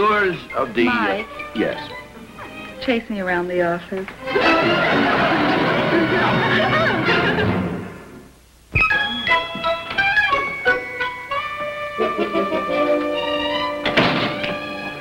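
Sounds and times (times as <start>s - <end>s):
background music: 0.0s - 15.0s
sudden thunk: 13.8s - 14.6s.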